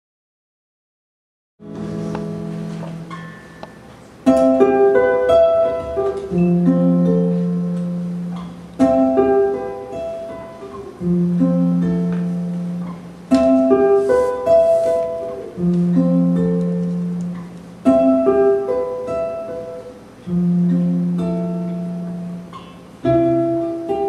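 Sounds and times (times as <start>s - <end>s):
acoustic jazz guitar chords: 1.6s - 24.0s.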